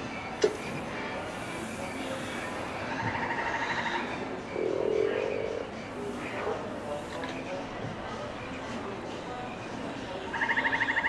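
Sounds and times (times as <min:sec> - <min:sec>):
frog trilling: 0:10.4 - 0:11.0.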